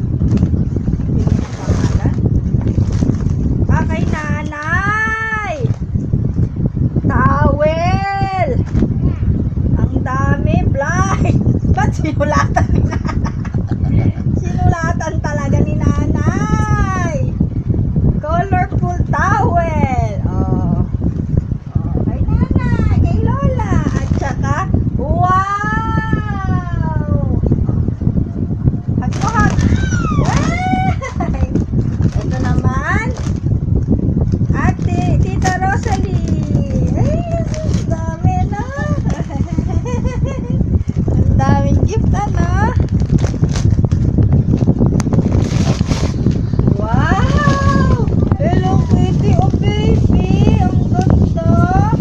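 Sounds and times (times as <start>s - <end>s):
low rumbling handling noise: 0.0s - 52.0s
plastic wrapping crinkling: 1.2s - 4.2s, 29.1s - 33.4s, 34.7s - 39.4s, 42.3s - 46.4s, 47.1s - 49.5s.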